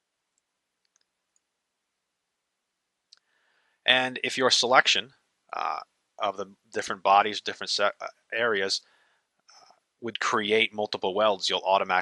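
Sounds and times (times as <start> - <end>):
man speaking: 3.9 - 8.8, 10.0 - 12.0.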